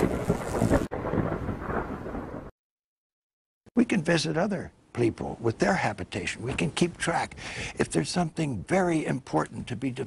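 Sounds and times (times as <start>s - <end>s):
thunder-like rumbling: 0.0s - 2.5s.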